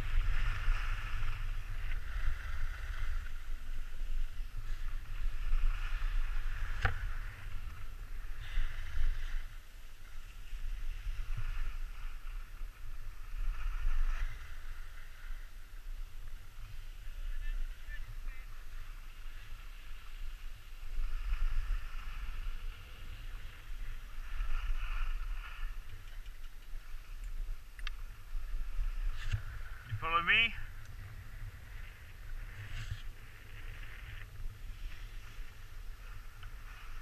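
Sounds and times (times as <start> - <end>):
low wind rumble: 0.0 - 37.0
skis scraping over snow: 0.0 - 37.0.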